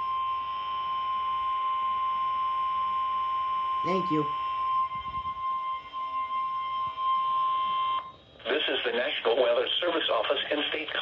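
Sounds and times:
announcer speaking: 3.9 - 4.3
steady high alert tone: 3.9 - 4.4.

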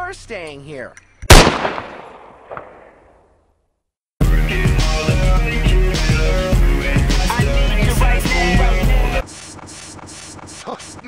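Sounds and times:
pistol gunshot with echo: 1.3 - 3.0.

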